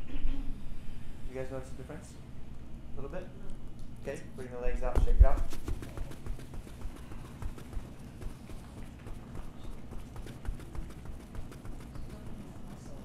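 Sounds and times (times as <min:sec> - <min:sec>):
legs thumping on yoga mats: 0:04.8 - 0:13.0.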